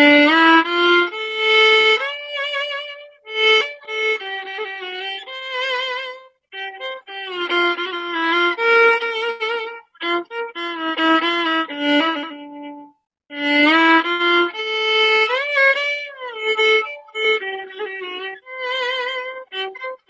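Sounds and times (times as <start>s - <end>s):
solo violin melody: 0.0s - 20.0s.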